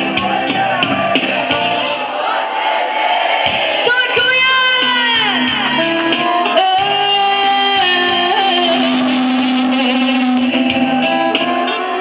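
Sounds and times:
live band holding a chord: 0.0s - 2.4s, 3.4s - 12.0s.

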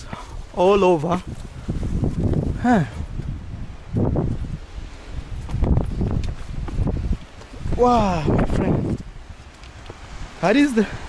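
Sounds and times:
footsteps on rocky path: 0.0s - 10.3s
low rumbles: 0.0s - 11.0s.

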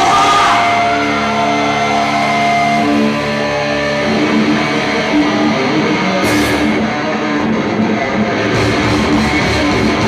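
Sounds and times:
rock band playing live: 0.0s - 10.0s.

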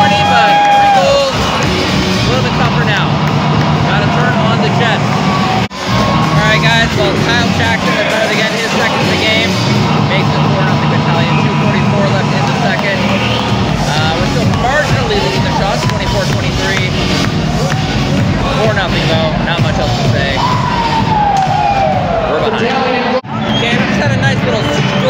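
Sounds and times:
music over public address: 0.0s - 25.0s.

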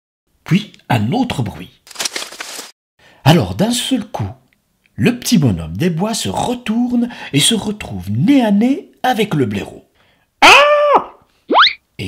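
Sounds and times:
high-pitched cry of surprise: 10.4s - 11.8s
rising slide whistle: 11.5s - 11.8s.

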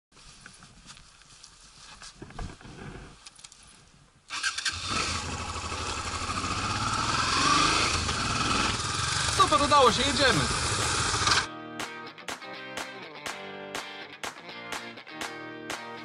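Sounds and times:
faint rustling: 0.1s - 4.2s
motorcycle engine accelerating: 4.3s - 11.5s.

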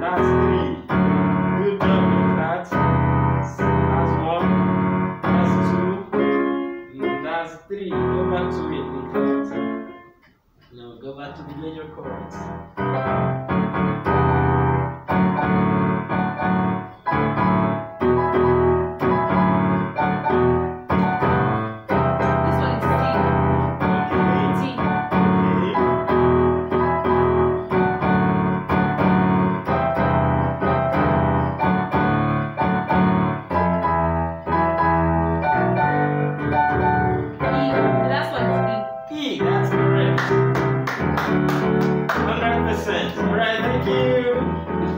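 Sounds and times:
electronic keyboard piano chords: 0.0s - 44.9s.

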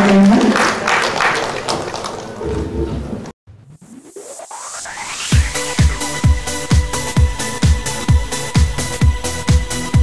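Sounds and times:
audience applause: 0.0s - 2.8s.

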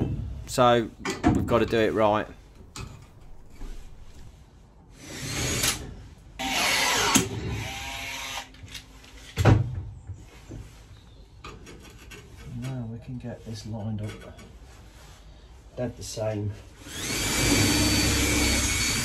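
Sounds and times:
cordless power tool whirring: 5.0s - 8.6s, 16.8s - 19.0s.

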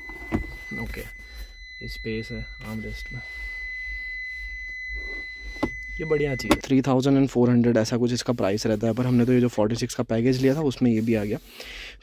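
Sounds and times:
low hum: 0.0s - 8.3s
high-pitched electronic beep: 0.0s - 8.6s.

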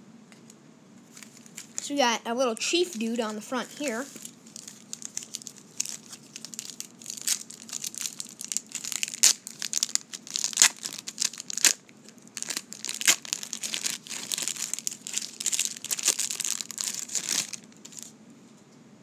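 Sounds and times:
wrapper crinkling and tearing: 1.1s - 1.9s, 2.6s - 18.1s.

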